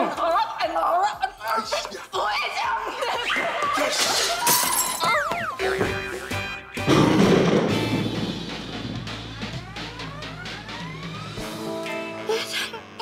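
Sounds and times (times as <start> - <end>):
background music: 0.0 - 13.0
laughter: 2.8 - 4.4
sharp crash: 6.9 - 9.6.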